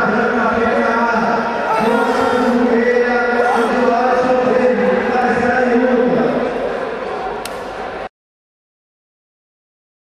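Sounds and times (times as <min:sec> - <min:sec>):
voices chanting long held notes: 0:01.7 - 0:02.8.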